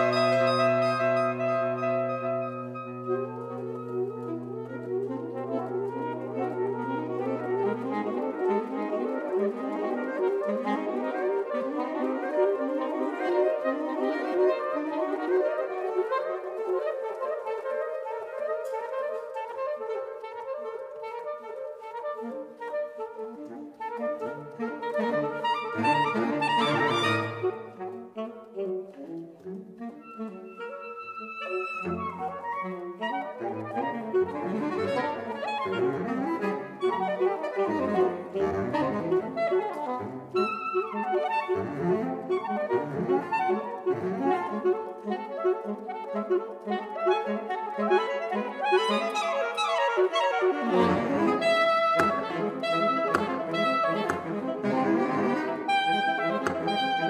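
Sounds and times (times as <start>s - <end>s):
saxophone quartet playing: 0.0s - 57.0s.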